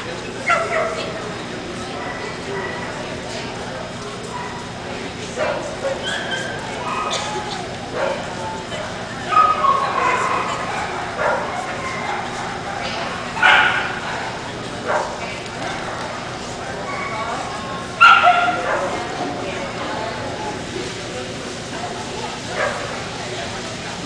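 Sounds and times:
crowd chatter: 0.0s - 24.0s
dogs barking and yipping: 0.4s - 1.2s, 1.8s - 3.1s, 4.2s - 8.4s, 9.2s - 16.1s, 16.8s - 19.2s.

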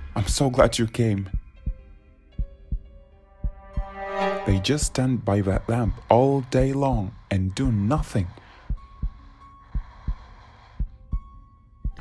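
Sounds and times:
faint steady drone: 0.0s - 12.0s
heartbeat thumps: 1.3s - 5.0s, 6.9s - 7.2s, 8.6s - 12.0s.

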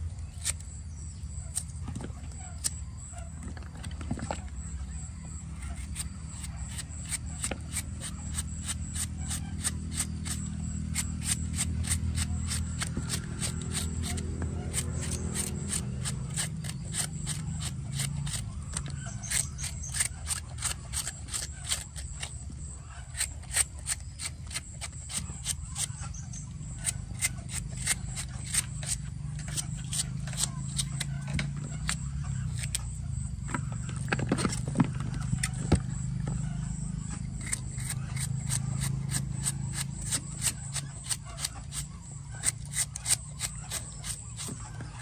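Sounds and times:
knife cutting bamboo shoot: 5.6s - 36.4s, 37.4s - 45.0s.

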